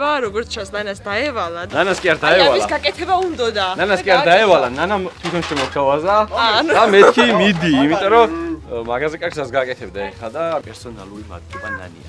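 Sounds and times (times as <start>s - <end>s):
excited voices exclaiming: 6.4s - 8.6s.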